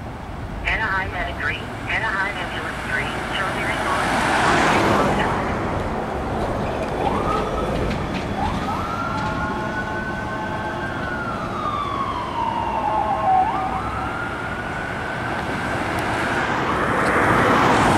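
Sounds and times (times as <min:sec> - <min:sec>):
road traffic noise: 0:00.0 - 0:17.9
ambulance siren wailing: 0:01.2 - 0:17.9.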